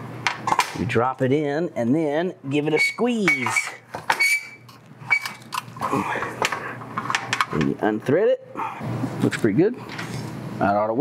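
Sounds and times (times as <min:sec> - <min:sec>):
metal scraping: 0:02.7 - 0:05.4.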